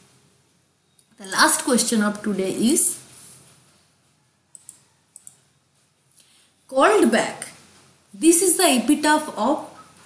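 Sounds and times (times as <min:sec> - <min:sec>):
faint computer mouse clicks: 0:04.5 - 0:05.4.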